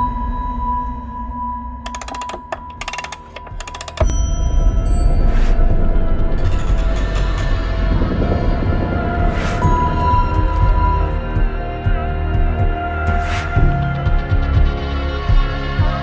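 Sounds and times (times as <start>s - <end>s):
held tone with fast ticking: 1.9s - 4.3s.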